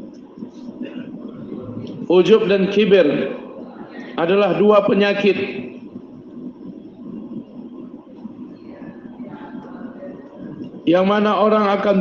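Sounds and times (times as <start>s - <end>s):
low steady background rumble: 0.0s - 12.0s.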